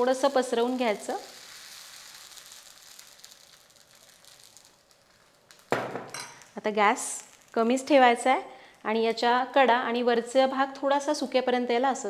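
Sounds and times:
batter sizzling on hot pan: 0.0 - 9.6.

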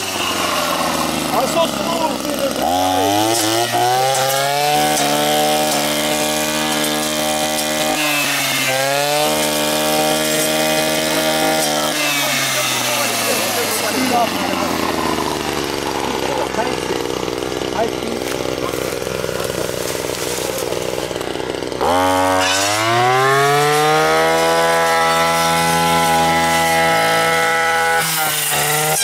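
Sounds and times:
brush cutter engine revving: 0.0 - 29.0.

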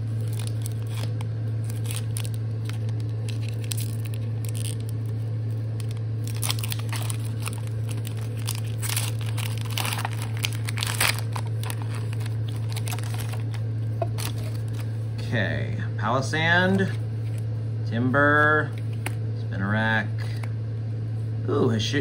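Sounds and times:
foil wrapper tearing and crinkling: 0.0 - 14.9
low hum: 0.0 - 22.0.

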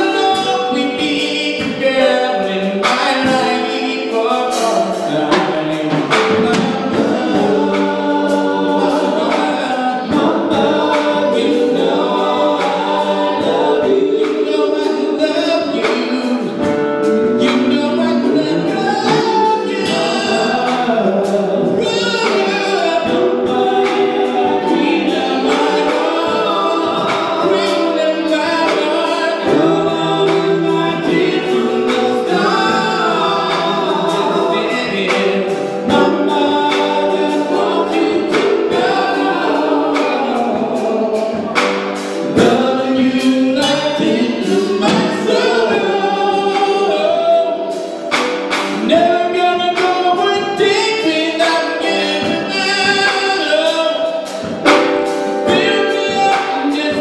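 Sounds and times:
men singing gospel: 0.0 - 57.0.

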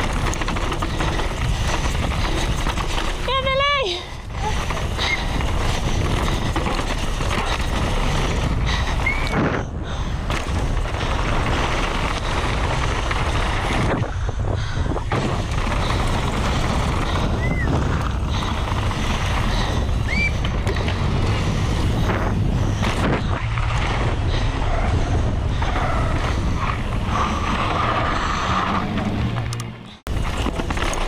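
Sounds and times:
wind buffeting microphone: 0.0 - 28.0
bike rattling: 0.0 - 31.0
tyres rumbling on gravel: 0.0 - 31.0.

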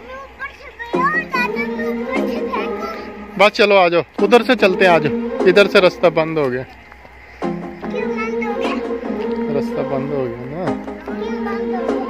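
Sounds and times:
children calling out: 0.0 - 3.4, 4.4 - 12.0
background music with steady beat: 0.9 - 12.0.

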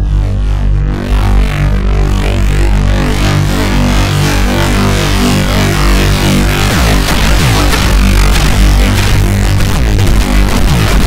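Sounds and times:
synthesizer low drone: 0.0 - 11.0
synthesizer pitch sweep: 0.0 - 11.0.

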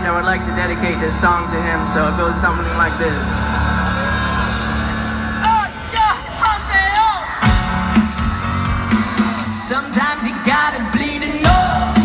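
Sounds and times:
low chord over loudspeakers: 0.0 - 7.6
fans whooping: 0.8 - 12.0.

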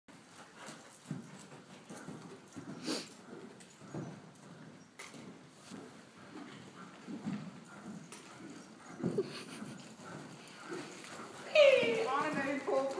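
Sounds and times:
horse hoofbeats: 0.1 - 12.9.

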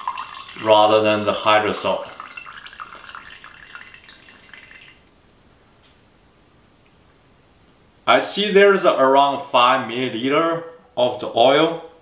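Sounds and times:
liquid trickling into metal cup: 0.0 - 5.0.

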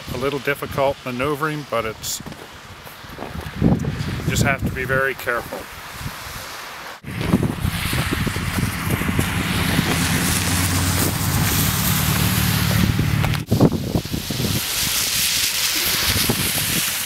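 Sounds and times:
wind noise on microphone: 2.0 - 17.0
low engine hum: 7.1 - 13.5.

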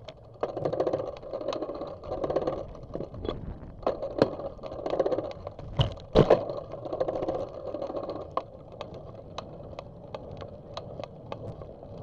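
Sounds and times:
bicycle rattling on concrete: 0.0 - 12.0.

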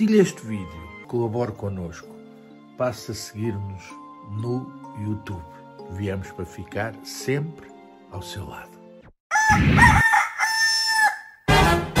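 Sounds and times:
rooster crowing: 9.3 - 11.5.

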